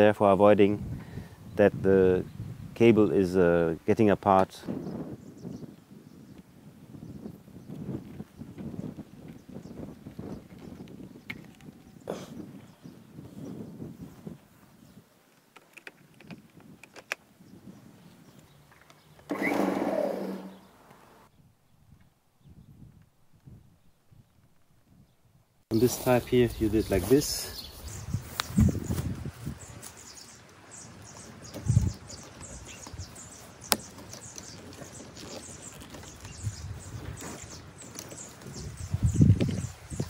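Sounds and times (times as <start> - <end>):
extension cable rustling and clicking: 15.3 - 17.2, 31.0 - 39.6.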